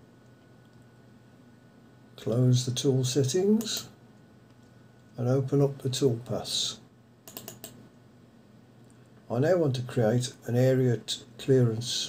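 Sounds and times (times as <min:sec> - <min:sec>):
faint computer clicks: 0:07.2 - 0:07.8.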